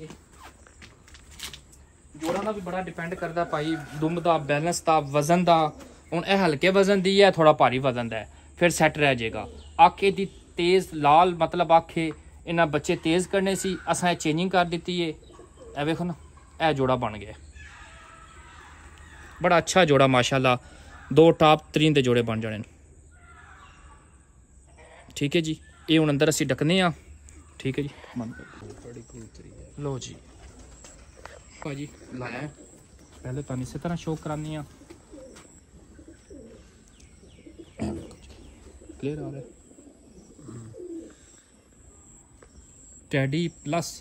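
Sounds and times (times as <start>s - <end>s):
pigeons cooing: 0.0s - 10.7s, 11.3s - 19.4s, 24.8s - 43.7s
distant animal calls: 0.0s - 21.7s, 22.7s - 44.0s.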